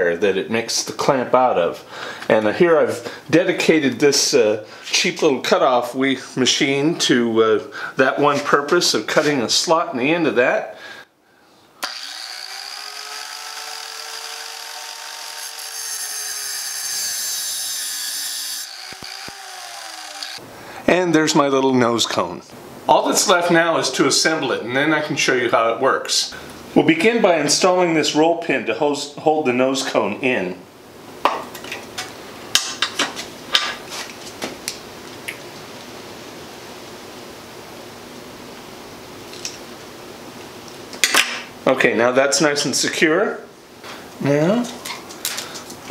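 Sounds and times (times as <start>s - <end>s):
faint steady hiss: 0.0s - 11.9s, 18.9s - 45.9s
abrasive cutoff saw running: 11.8s - 20.4s.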